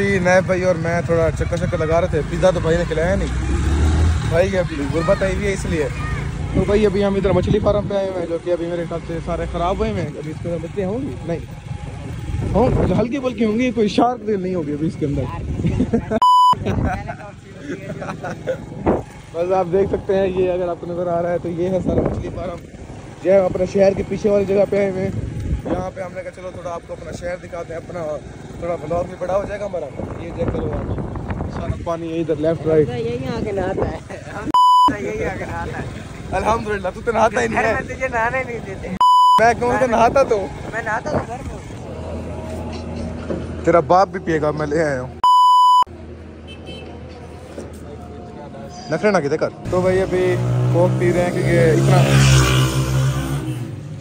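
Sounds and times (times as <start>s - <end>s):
voices: 0.0s - 52.8s
low outdoor background: 0.0s - 54.0s
high electronic censor beep: 16.2s - 16.6s, 34.5s - 35.1s, 39.0s - 39.5s, 45.2s - 45.9s.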